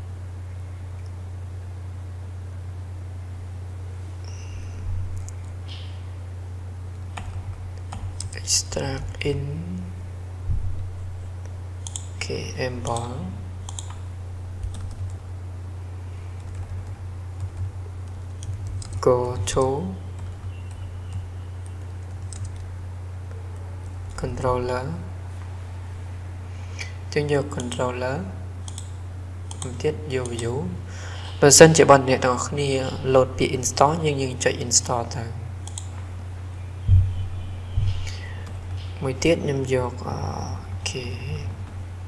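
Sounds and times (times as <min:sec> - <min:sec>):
steady low hum: 0:00.0 - 0:42.0
computer keyboard typing: 0:07.2 - 0:08.4, 0:11.8 - 0:12.2, 0:12.8 - 0:15.2, 0:16.4 - 0:22.7, 0:28.6 - 0:28.9, 0:29.5 - 0:30.5, 0:35.6 - 0:36.0
low thump: 0:10.5 - 0:10.8, 0:36.9 - 0:37.2.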